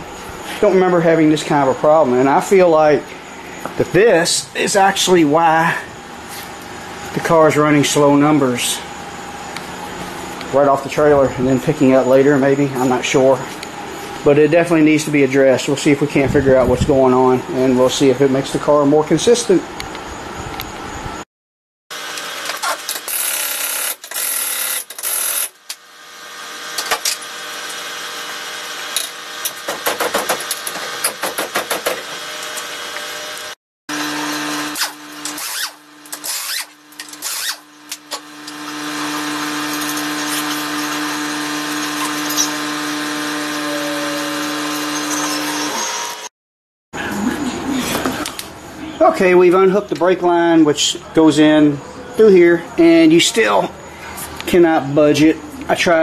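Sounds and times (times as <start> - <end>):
pneumatic impact wrench hammering: 22.1 - 25.8, 28.9 - 32.8, 34.2 - 46.3.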